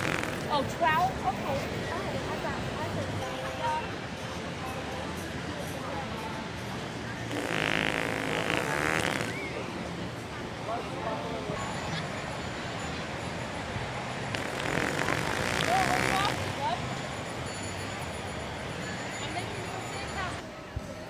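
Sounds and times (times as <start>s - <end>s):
fake fart noises: 0.0s - 0.5s, 7.3s - 9.4s, 14.3s - 16.5s.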